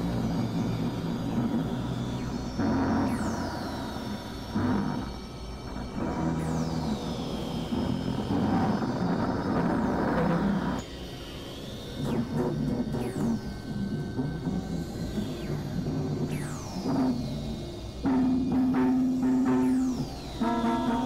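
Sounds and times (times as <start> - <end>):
electronic drone music: 12.0 - 21.0.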